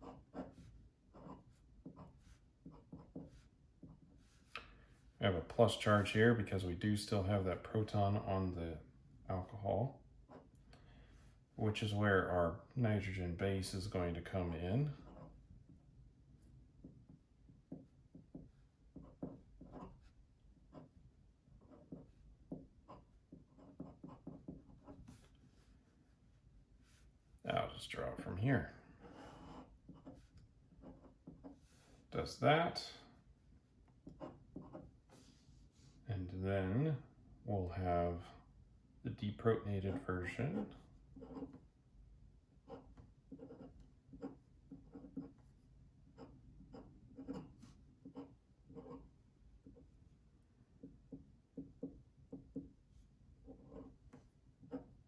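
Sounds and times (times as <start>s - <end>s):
pen scratching on paper: 0.0s - 4.5s, 18.3s - 21.0s, 22.8s - 26.2s, 29.0s - 32.0s, 34.0s - 35.4s, 39.9s - 41.6s, 42.6s - 49.9s, 52.9s - 55.0s
pen nib scratching on paper: 40.6s - 41.6s, 42.7s - 49.1s.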